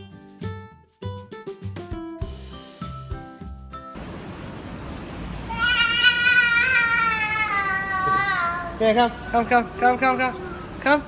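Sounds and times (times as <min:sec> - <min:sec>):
toddler wailing: 0:05.5 - 0:10.8.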